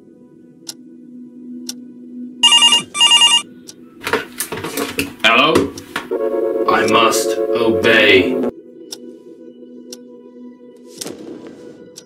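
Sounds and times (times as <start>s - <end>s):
desk telephone ringing: 2.4s - 3.4s, 6.1s - 8.5s.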